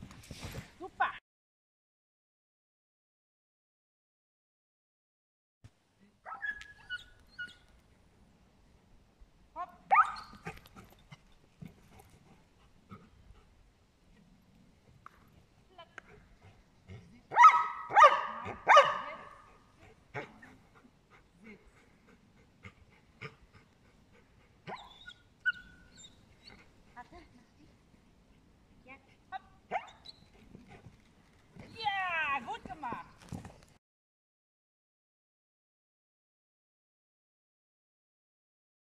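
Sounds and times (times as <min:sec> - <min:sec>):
dog barking: 0:09.9 - 0:10.3, 0:17.3 - 0:19.5.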